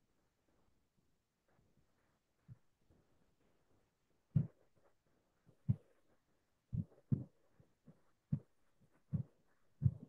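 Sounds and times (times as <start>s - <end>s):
soft dull thumps: 9.1s - 10.0s.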